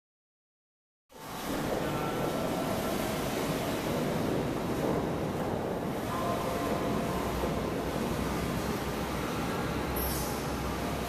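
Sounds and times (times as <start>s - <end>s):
water noise: 1.1s - 11.0s
boat engine rumble: 1.2s - 11.0s.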